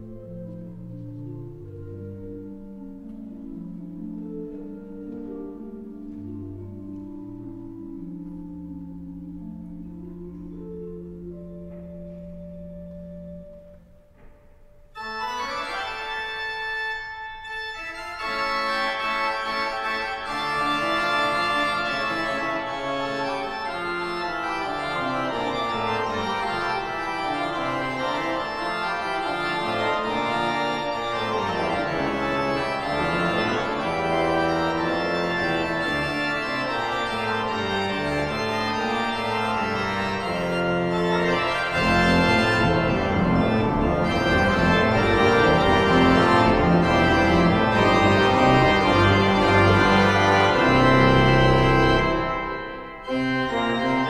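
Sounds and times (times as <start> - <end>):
pipe organ playing: 0.0 - 54.0.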